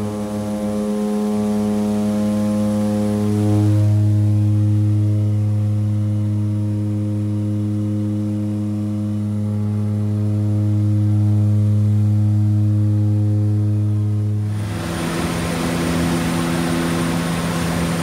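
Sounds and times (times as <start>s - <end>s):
propeller drone in cabin: 0.0s - 18.0s.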